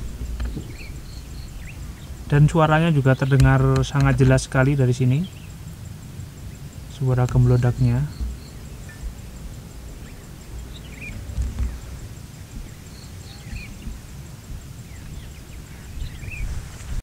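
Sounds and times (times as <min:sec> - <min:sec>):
distant low rumble of rockfall: 0:00.0 - 0:16.8
insect ticking: 0:00.0 - 0:17.0
small birds chirping: 0:00.0 - 0:17.0.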